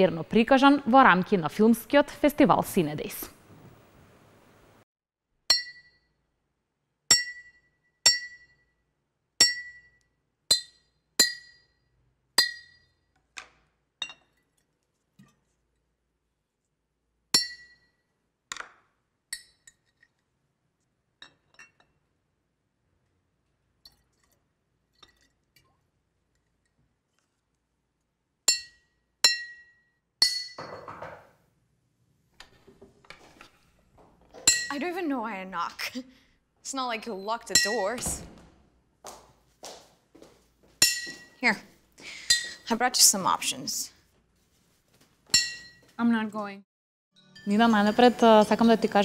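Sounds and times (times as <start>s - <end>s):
glass clinking: 19.3s - 19.9s, 28.5s - 31.3s, 34.4s - 34.8s, 40.8s - 41.4s, 45.3s - 45.9s
glass bottles clinking: 30.2s - 31.3s, 34.3s - 34.8s.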